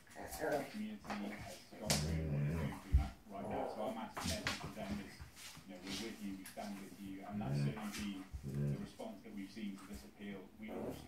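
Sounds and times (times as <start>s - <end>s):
dog growling: 1.8s - 3.8s, 7.2s - 9.0s
television news voice: 5.7s - 10.9s.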